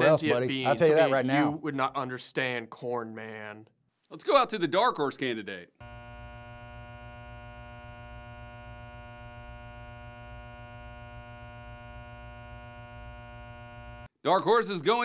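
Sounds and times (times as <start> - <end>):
electrical buzz: 5.8 - 14.1.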